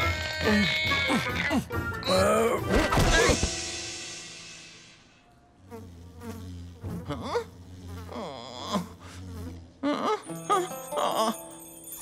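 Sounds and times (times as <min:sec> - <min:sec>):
light music: 0:00.0 - 0:05.4, 0:10.0 - 0:12.0
cartoon bee buzzing: 0:05.4 - 0:11.5.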